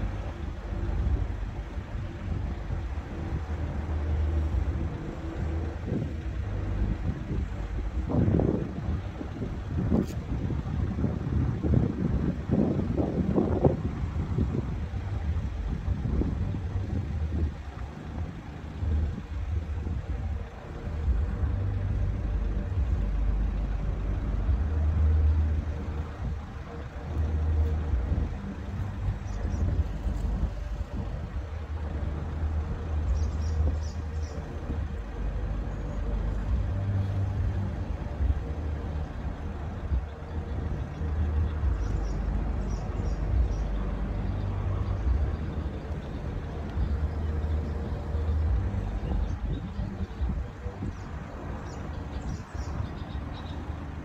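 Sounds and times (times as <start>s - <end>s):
bridge lifting machinery humming: 0.0s - 54.0s
gusty rumble: 0.0s - 54.0s.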